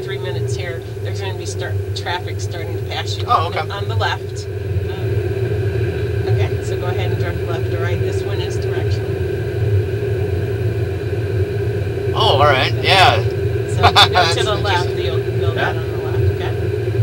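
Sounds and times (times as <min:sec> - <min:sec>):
constant hum: 0:00.0 - 0:17.0
steady low rumble: 0:00.0 - 0:17.0.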